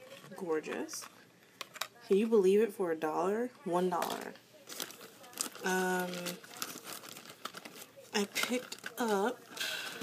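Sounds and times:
crinkling and rustling: 0:00.0 - 0:02.3, 0:03.9 - 0:10.0.

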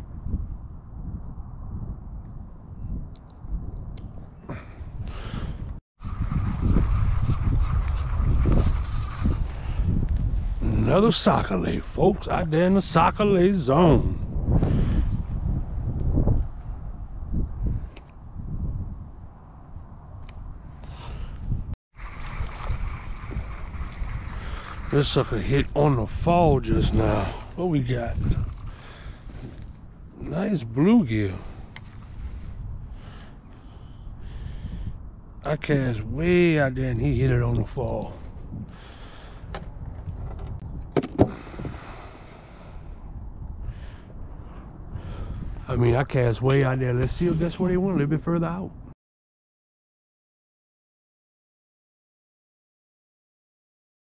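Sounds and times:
wind rumbling on microphone: 0:00.0 - 0:48.9.

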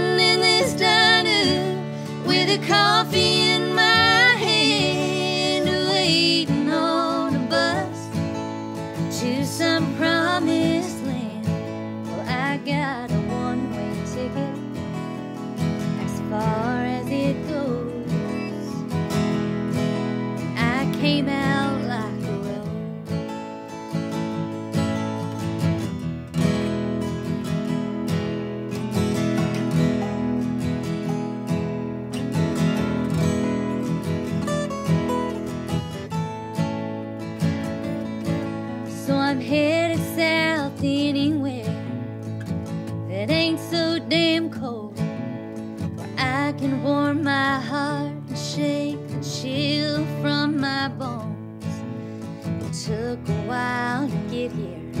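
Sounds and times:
picked acoustic guitar: 0:00.0 - 0:55.0
strummed acoustic guitar: 0:00.0 - 0:55.0.

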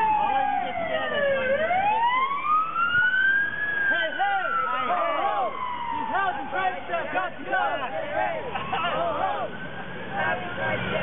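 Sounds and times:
voices: 0:00.0 - 0:02.3, 0:02.9 - 0:11.0
siren wailing: 0:00.0 - 0:07.9.

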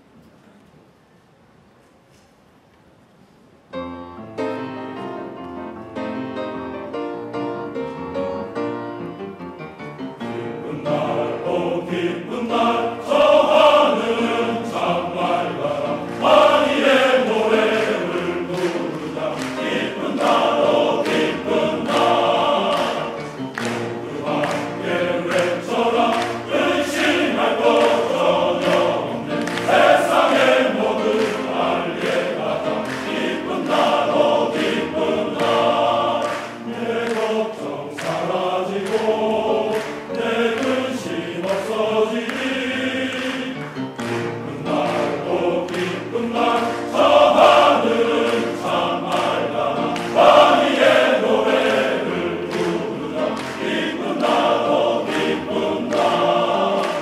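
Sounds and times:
male choir singing: 0:10.2 - 0:57.0.

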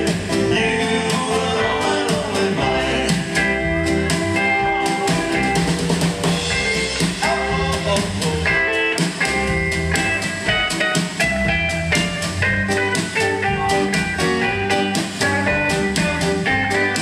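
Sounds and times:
acoustic guitar: 0:00.0 - 0:17.0
drums: 0:00.0 - 0:17.0
electric guitar: 0:00.0 - 0:17.0.

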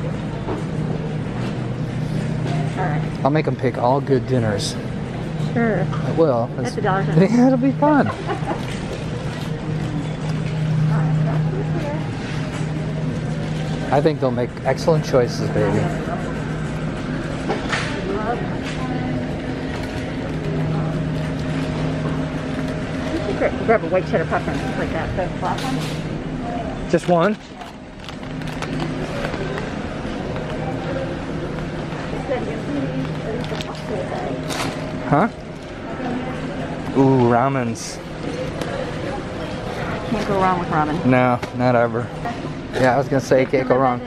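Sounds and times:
faint voices: 0:00.0 - 0:44.0
steady low hum: 0:00.0 - 0:44.0.

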